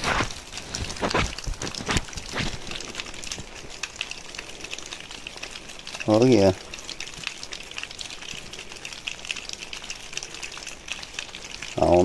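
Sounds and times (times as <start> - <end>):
water dripping from rock: 0.0 - 12.0.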